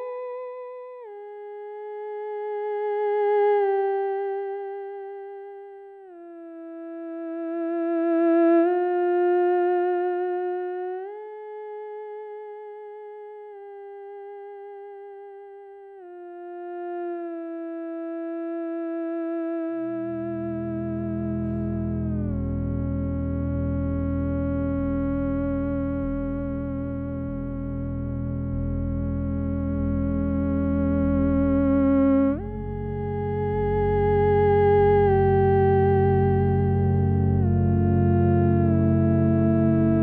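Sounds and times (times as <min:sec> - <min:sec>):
theremin melody with vibrato: 0:16.0 - 0:40.0
low sustained drone chord: 0:20.1 - 0:40.0.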